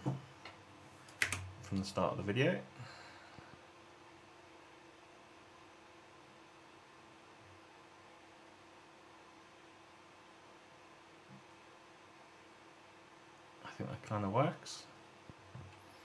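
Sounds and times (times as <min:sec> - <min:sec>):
faint steady hiss: 0:00.0 - 0:16.0.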